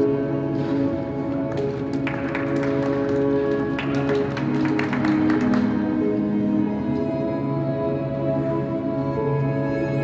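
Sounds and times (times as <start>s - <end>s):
slow music with held tones: 0.0s - 10.0s.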